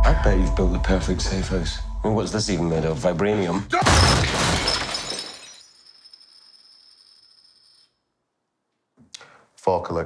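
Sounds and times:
wooden table crashing: 3.8s - 5.6s
glass shattering: 3.8s - 7.9s.

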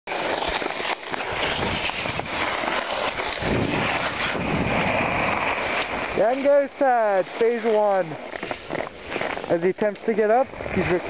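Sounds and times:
skis scraping over snow: 0.1s - 11.0s.

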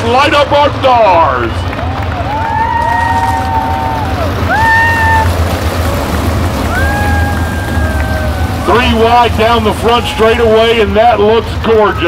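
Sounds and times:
race car engines revving: 0.0s - 12.0s.

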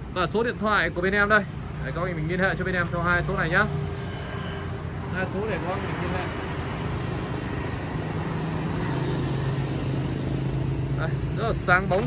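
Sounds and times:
car engines on road: 0.0s - 12.0s
motorbike engines: 0.0s - 12.0s.

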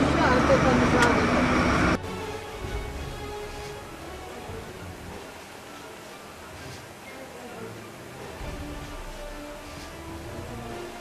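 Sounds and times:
voices: 0.0s - 2.0s
background music: 0.0s - 11.0s
traffic noise: 0.0s - 11.0s.

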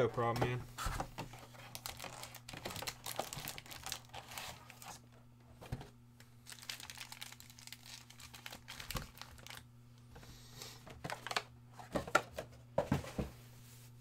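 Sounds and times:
foil packs crinkling: 1.3s - 5.0s, 6.4s - 9.7s.

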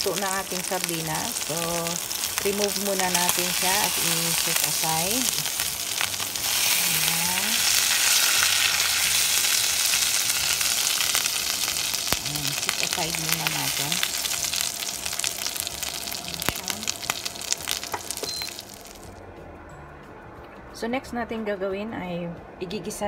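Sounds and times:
oil sizzling in a frying pan: 0.0s - 19.1s
sharp crackles: 0.0s - 19.1s.

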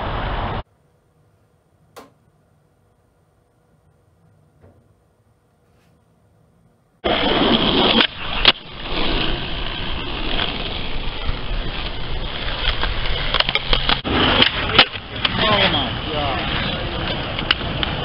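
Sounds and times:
skateboard rolling on asphalt: 7.0s - 18.0s
skateboard clack: 7.1s - 15.7s, 16.9s - 18.0s.

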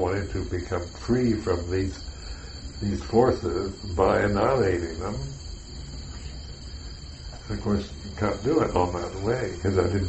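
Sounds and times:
crickets chirping: 0.0s - 10.0s
low steady hum: 0.0s - 10.0s.

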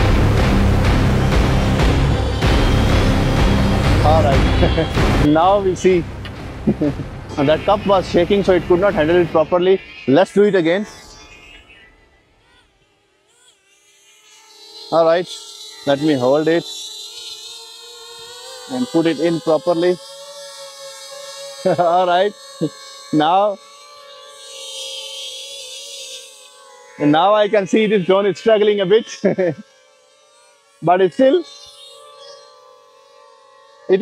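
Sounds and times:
drone propellers humming: 0.0s - 34.0s.

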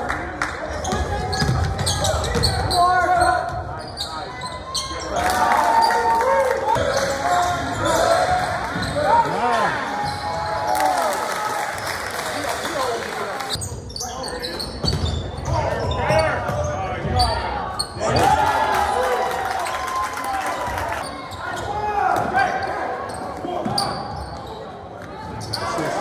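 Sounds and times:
spectators' voices: 0.0s - 26.0s
sneakers squeaking: 0.8s - 6.0s, 6.8s - 10.6s, 13.5s - 18.1s, 21.0s - 26.0s
basketball bouncing: 1.4s - 2.6s.

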